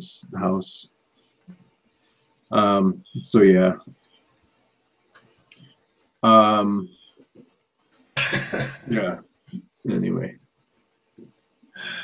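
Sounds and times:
man coughing: 0:08.2 - 0:09.2.

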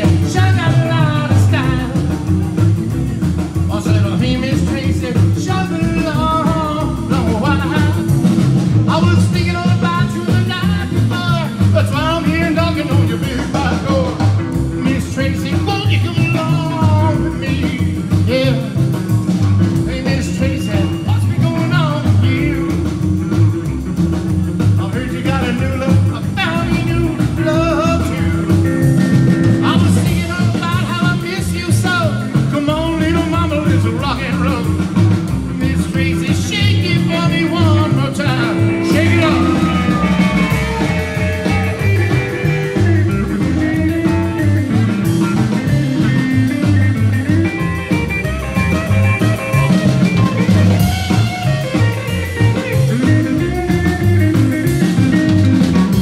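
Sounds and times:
man singing: 0:00.0 - 0:23.6, 0:24.6 - 0:55.9
drum kit: 0:00.0 - 0:56.0
electric lead guitar: 0:00.0 - 0:56.0
upright bass: 0:00.0 - 0:56.0.

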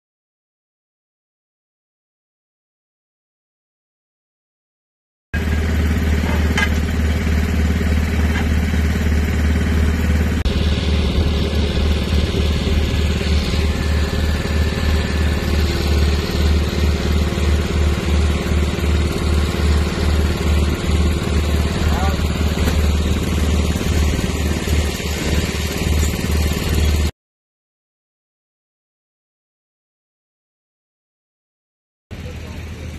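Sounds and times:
diesel engine drone: 0:05.4 - 0:27.1, 0:32.1 - 0:32.9.

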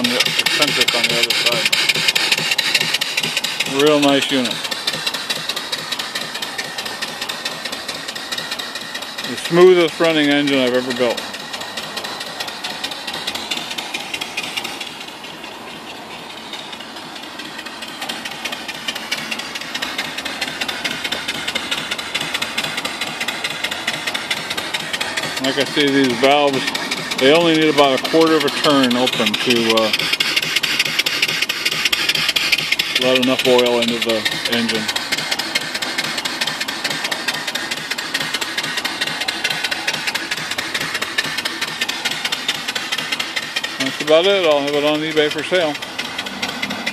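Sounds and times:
hiss of escaping steam: 0:00.0 - 0:07.6
steam engine exhaust beats: 0:00.0 - 0:46.9.

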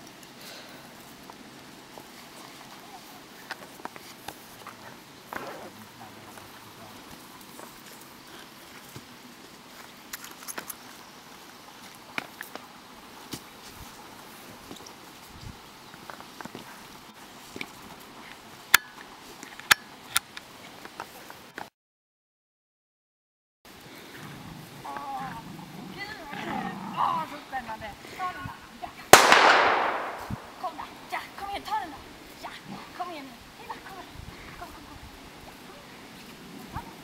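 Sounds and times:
sharp clicks: 0:29.2 - 0:30.5.

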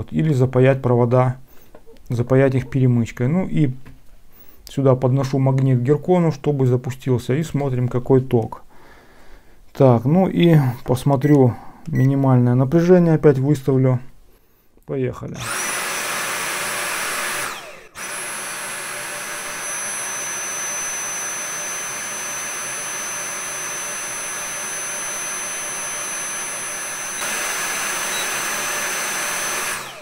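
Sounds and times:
vacuum motor high-pitched whine: 0:15.4 - 0:30.0.

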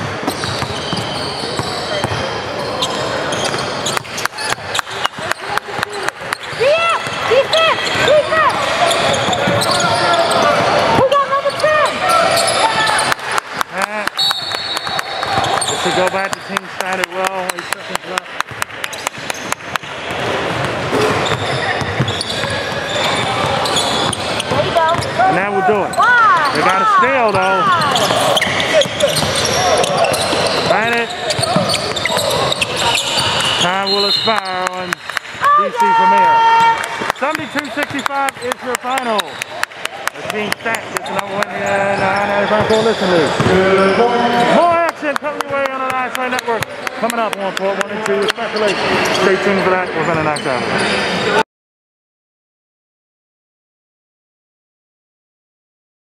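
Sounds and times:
players calling out: 0:00.3 - 0:19.1, 0:20.7 - 0:51.4.

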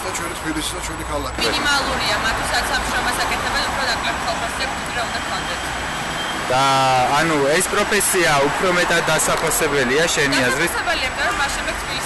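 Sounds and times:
man speaking: 0:00.0 - 0:01.6, 0:06.5 - 0:10.8
motor vehicle rushing: 0:00.0 - 0:12.0.

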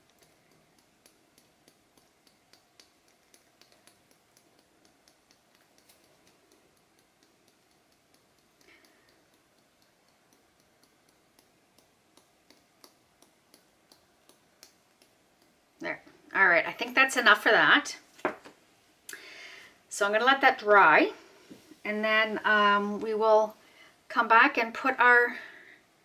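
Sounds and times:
glitter ticking from shaker bottle: 0:00.0 - 0:15.6.

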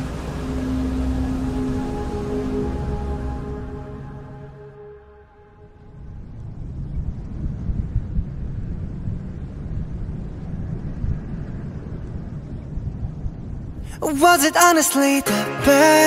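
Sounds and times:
low wind rumble: 0:00.0 - 0:15.0.

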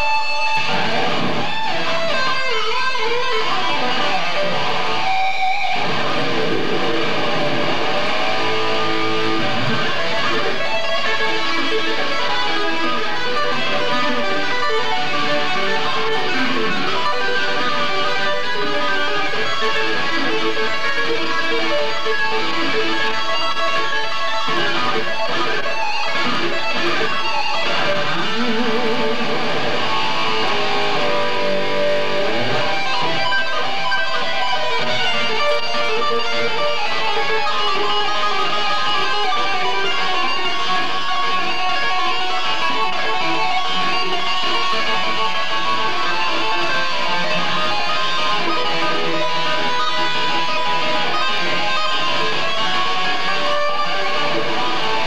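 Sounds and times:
electric guitar through amplifier: 0:00.0 - 0:55.0.

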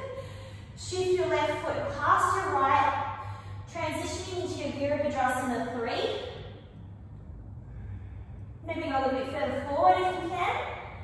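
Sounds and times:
steady low hum: 0:00.0 - 0:11.0
woman speaking: 0:00.8 - 0:03.0, 0:03.7 - 0:06.2, 0:08.7 - 0:10.7.

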